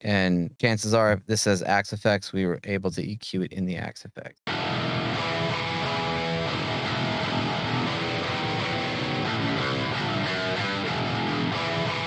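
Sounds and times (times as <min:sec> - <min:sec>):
clean electric guitar: 0:04.5 - 0:12.0.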